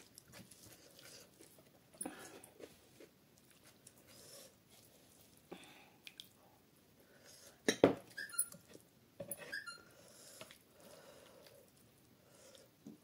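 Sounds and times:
hand squelching mixing rice: 0:00.0 - 0:06.3
short high squeaks: 0:08.1 - 0:08.7, 0:09.4 - 0:09.9.

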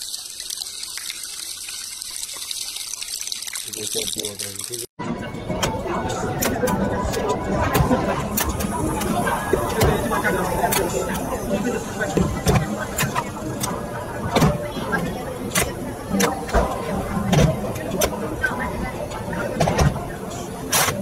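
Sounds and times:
murmur of voices: 0:05.2 - 0:20.8.

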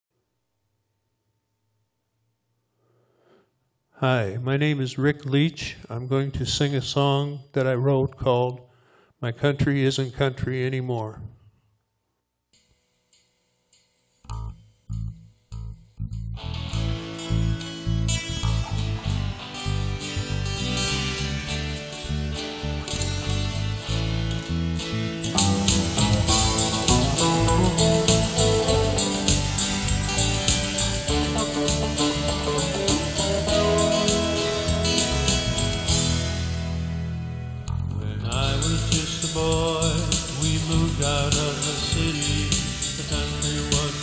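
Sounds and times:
acoustic guitar playing: 0:14.4 - 0:37.9.

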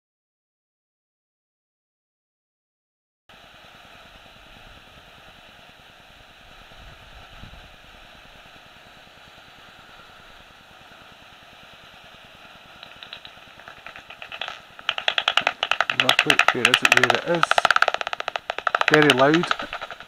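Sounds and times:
bat echolocation clicks: 0:12.8 - 0:20.0.

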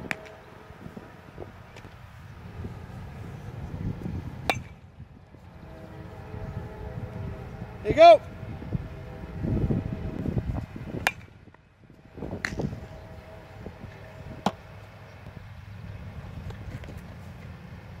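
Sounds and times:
baseball striking sharp knocks: 0:00.0 - 0:00.4, 0:04.4 - 0:04.8, 0:10.9 - 0:11.6, 0:12.3 - 0:12.8, 0:14.3 - 0:14.7
low background hum: 0:00.0 - 0:18.0.

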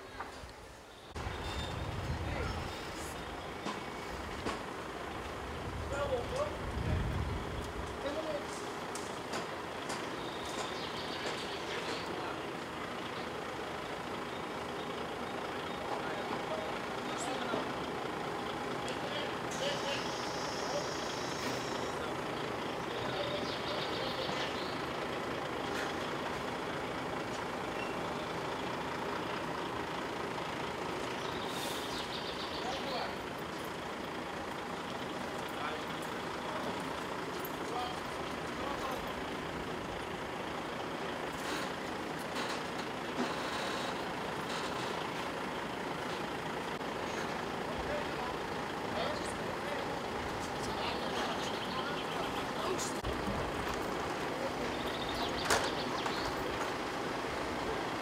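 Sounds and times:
diesel truck engine running: 0:00.0 - 0:58.0.

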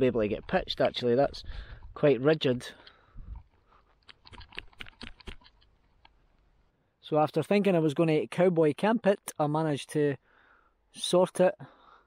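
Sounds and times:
trekking pole clicks and taps: 0:04.0 - 0:06.2.

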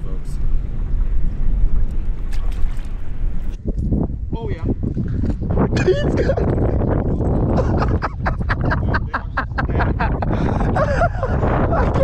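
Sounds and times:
wind buffeting microphone: 0:00.0 - 0:12.0
breathy laughs: 0:07.5 - 0:12.0.

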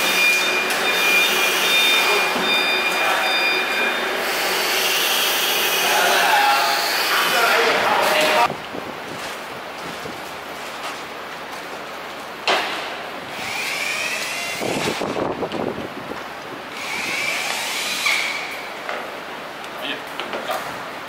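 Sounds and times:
impact driver motor whine: 0:13.3 - 0:15.2.

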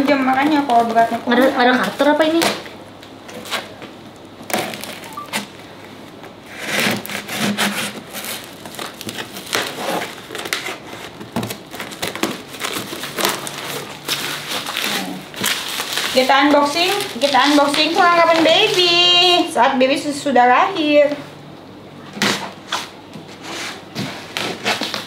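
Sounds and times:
scissors cutting packing tape: 0:06.5 - 0:18.9.

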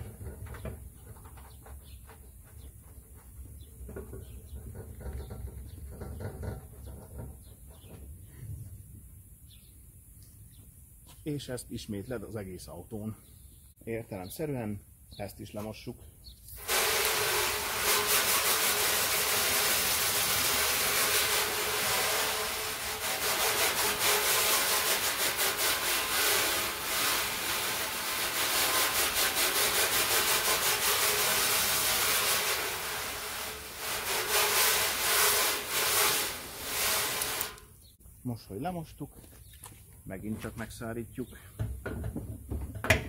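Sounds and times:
hose water spraying on car: 0:16.6 - 0:37.6.

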